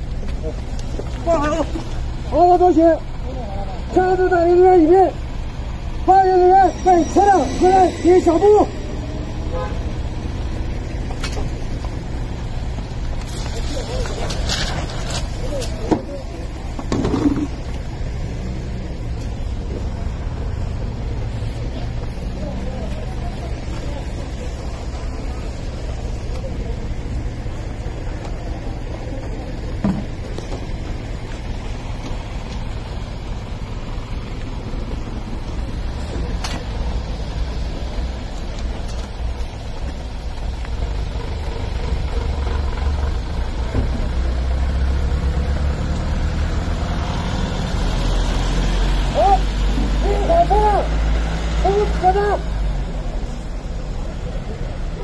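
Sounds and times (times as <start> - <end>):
car engine idling: 0.0 - 55.0
person shouting commands: 6.0 - 8.8, 49.1 - 51.0, 51.6 - 52.5.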